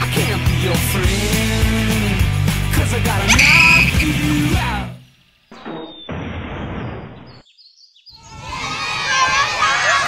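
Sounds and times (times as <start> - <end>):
muffled outdoor crowd noise: 3.3 - 4.5, 8.2 - 10.0
children shouting and cheering: 8.2 - 10.0.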